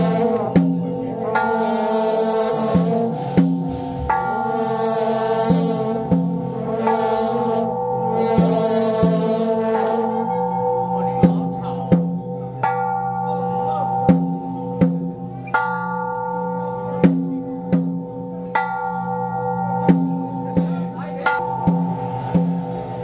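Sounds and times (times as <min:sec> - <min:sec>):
cymbals clashing: 0:00.0 - 0:23.0
gongs ringing: 0:00.0 - 0:23.0.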